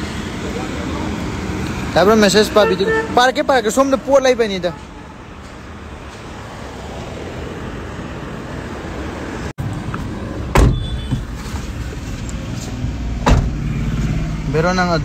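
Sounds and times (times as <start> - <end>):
traffic and road noise: 0.0 - 15.0
loud thump: 10.5 - 11.2, 13.2 - 13.6.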